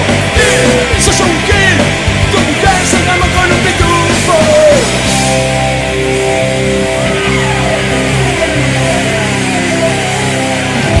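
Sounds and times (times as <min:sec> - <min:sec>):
distorted electric guitars: 0:00.0 - 0:11.0
punk rock band playing live: 0:00.0 - 0:11.0.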